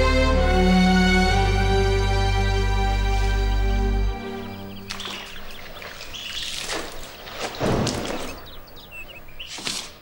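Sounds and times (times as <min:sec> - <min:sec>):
birds chirping: 0:02.8 - 0:10.0
water sloshing in metal basin: 0:04.8 - 0:08.6.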